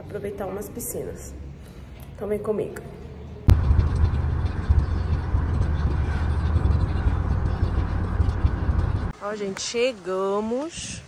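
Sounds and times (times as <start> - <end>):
car road and engine rumble: 3.5 - 9.2.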